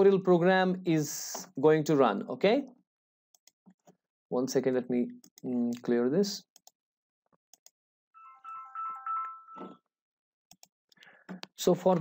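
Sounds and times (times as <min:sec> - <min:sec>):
electronic beeping tune: 0:08.2 - 0:09.8.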